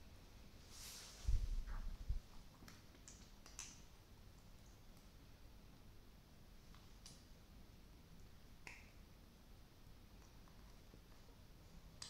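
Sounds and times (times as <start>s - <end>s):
teeth gnawing rubber clicks: 2.6s - 3.8s.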